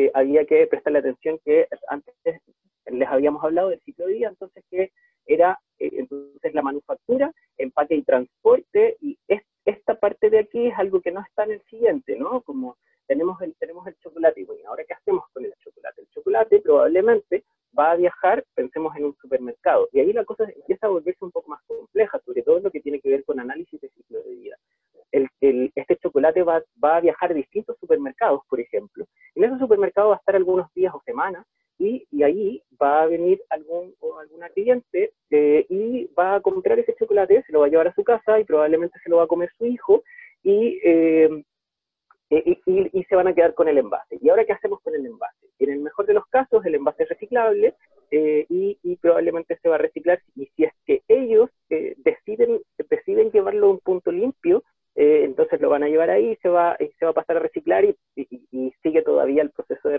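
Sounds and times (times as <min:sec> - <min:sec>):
man lecturing: 0:00.0 - 0:41.4, 0:42.3 - 0:59.9
man talking over video call: 0:00.0 - 0:41.5, 0:42.1 - 0:59.9.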